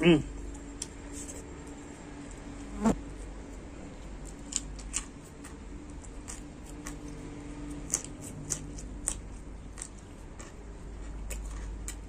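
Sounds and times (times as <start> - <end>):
steady low buzz: 0.0 - 7.9
man chewing food: 3.0 - 12.0.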